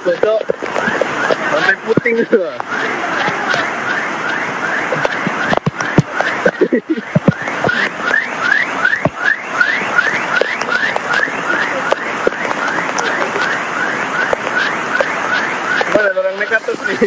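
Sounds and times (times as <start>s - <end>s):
floodwater rushing: 0.0s - 17.0s.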